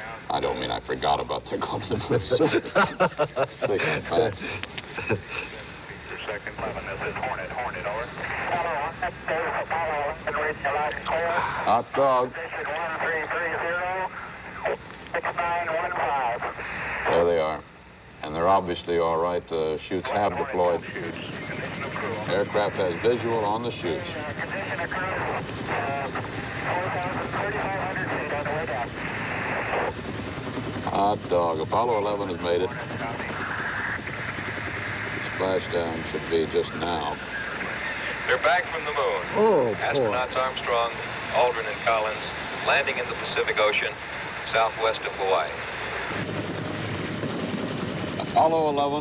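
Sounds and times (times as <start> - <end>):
muffled radio voice transmissions: 0.0 - 30.1, 30.8 - 46.0
helicopter rotor and engines: 0.0 - 49.0
steady background hum and hiss: 0.0 - 49.0.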